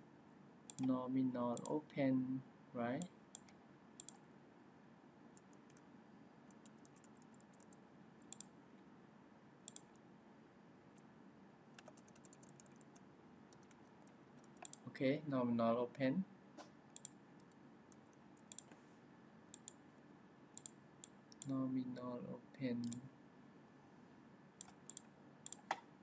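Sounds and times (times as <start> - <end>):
computer mouse clicks: 0.7 - 0.9, 3.3 - 4.2, 5.4 - 5.8, 6.5 - 8.5, 9.7 - 10.0, 11.8 - 14.8, 16.9 - 18.8, 19.5 - 19.8, 20.6 - 21.5, 24.6 - 25.8
keyboard clicks: 0.7 - 0.9, 3.4 - 4.2, 6.5 - 8.5, 9.7 - 10.0, 11.8 - 14.8, 17.0 - 18.7, 24.6 - 25.8.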